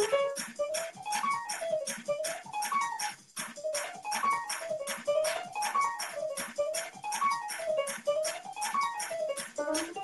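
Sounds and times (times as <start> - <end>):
steady drum beat: 9.4 - 10.0.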